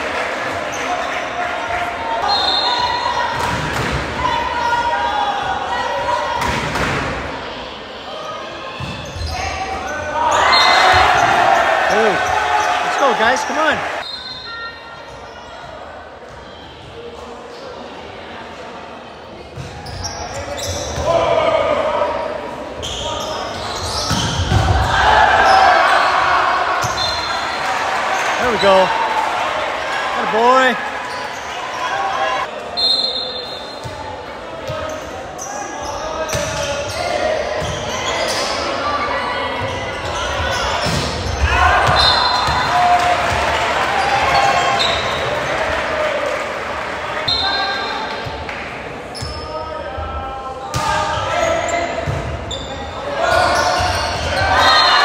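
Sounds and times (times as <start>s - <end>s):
people shouting and cheering: 0.0s - 15.0s, 24.4s - 48.6s, 52.9s - 55.0s
sneakers squeaking on floor: 8.7s - 12.8s, 19.5s - 21.2s, 22.8s - 24.6s, 26.8s - 27.6s, 34.7s - 38.8s, 39.4s - 42.7s, 44.1s - 45.3s, 49.1s - 49.6s, 50.7s - 55.0s.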